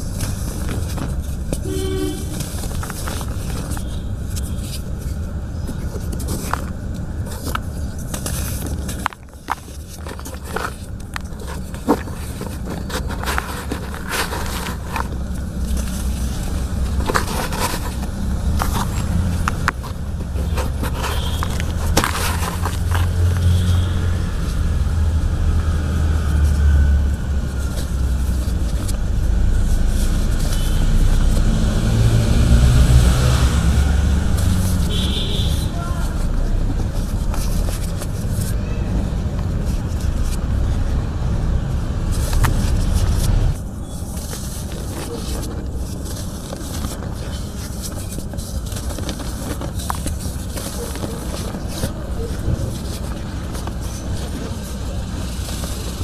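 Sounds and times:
faint voices: 35.5s - 41.0s, 44.5s - 56.0s.

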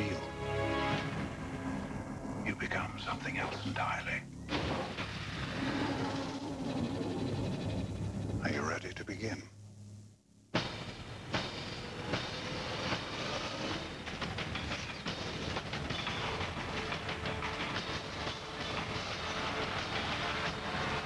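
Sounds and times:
sharp impacts: 10.5s - 21.0s
faint steady screech: 11.6s - 15.0s.

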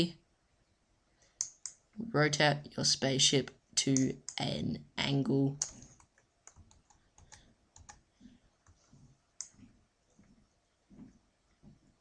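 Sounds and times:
computer mouse clicks: 1.4s - 1.8s, 5.6s - 8.0s, 8.6s - 9.7s.

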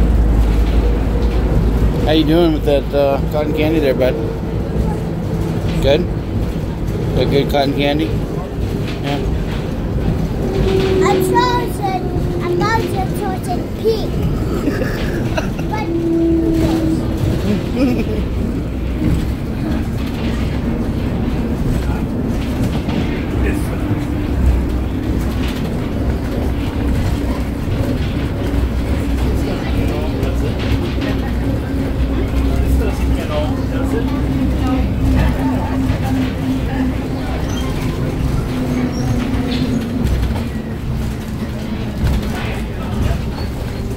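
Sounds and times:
monorail car rumble: 0.0s - 43.9s.

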